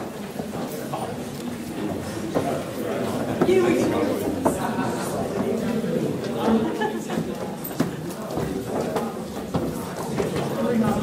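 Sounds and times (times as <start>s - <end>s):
indistinct crowd chatter: 0.0s - 11.0s.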